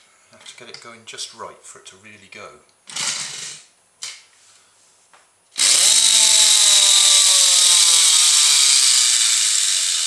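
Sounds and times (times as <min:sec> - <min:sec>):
toy air engine rattling: 0:05.6 - 0:10.0.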